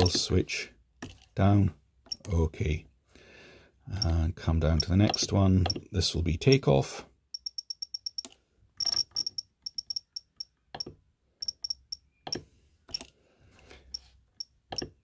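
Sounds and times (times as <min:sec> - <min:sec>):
short high key beeps: 0:07.3 - 0:10.4, 0:11.4 - 0:12.4.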